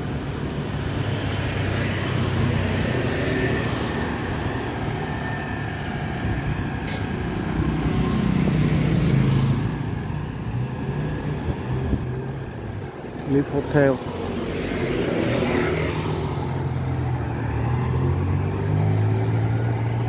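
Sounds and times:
scooters and cars passing: 0.0s - 20.0s.

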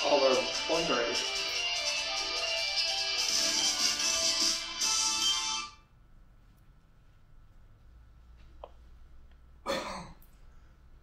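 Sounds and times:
man clearing his throat: 9.6s - 10.2s.

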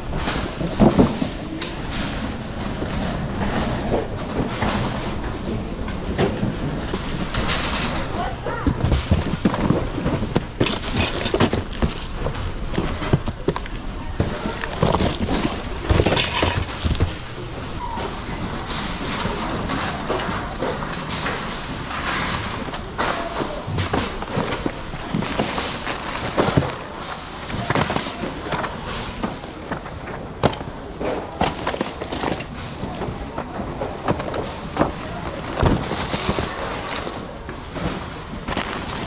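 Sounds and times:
metal basket rattling: 0.0s - 17.8s
shopping cart rattling on concrete: 0.0s - 39.0s.

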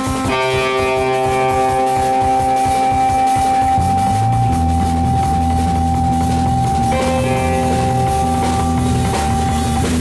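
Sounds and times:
drum kit: 0.0s - 10.0s
electric bass: 0.0s - 10.0s
jazz-rock band playing: 0.0s - 10.0s
high held note: 0.4s - 9.5s.

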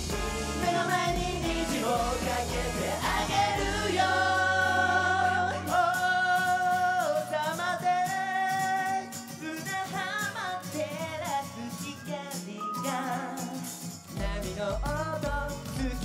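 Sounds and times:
voices singing in harmony: 0.0s - 8.1s
pop backing track: 0.0s - 16.0s.

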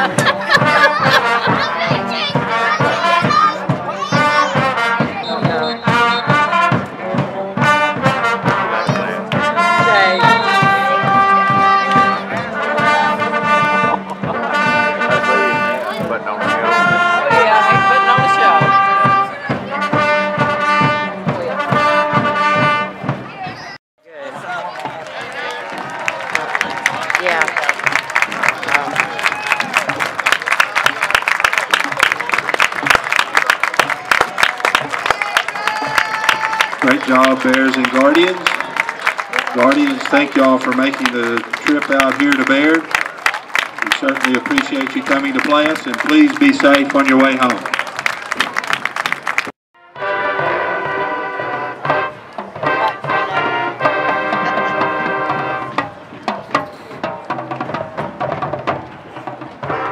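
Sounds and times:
brass band playing: 0.0s - 25.2s, 25.8s - 59.9s
crowd noise: 0.0s - 59.9s
people clapping: 8.9s - 12.5s, 24.4s - 49.6s.

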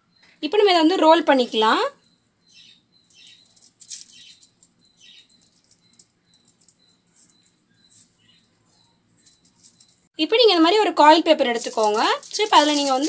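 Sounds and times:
aluminium foil crinkling: 3.1s - 8.5s, 9.2s - 10.1s, 10.7s - 13.0s.

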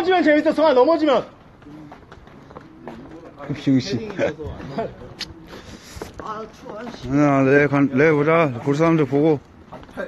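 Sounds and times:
people laughing: 4.2s - 5.4s.

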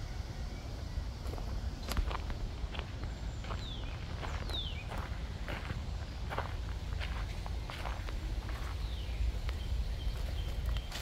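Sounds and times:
footsteps walking: 1.2s - 11.0s.

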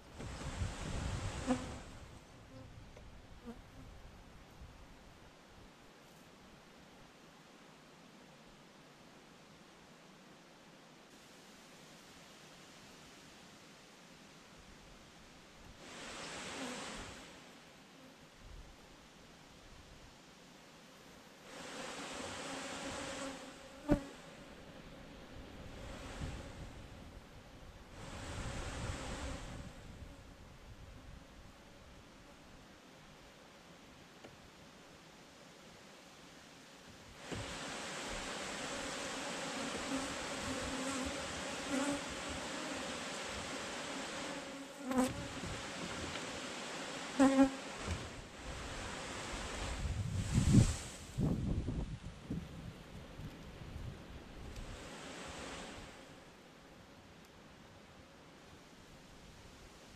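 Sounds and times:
honeybees buzzing: 21.6s - 27.2s, 38.3s - 45.9s, 46.5s - 47.7s.

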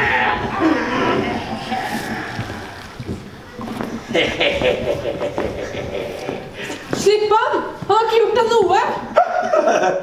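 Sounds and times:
raised voices struggling: 0.0s - 3.2s.

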